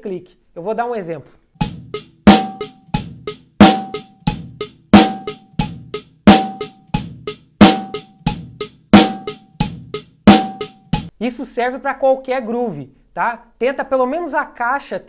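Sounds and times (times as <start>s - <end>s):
acoustic drum kit groove: 1.6s - 11.1s.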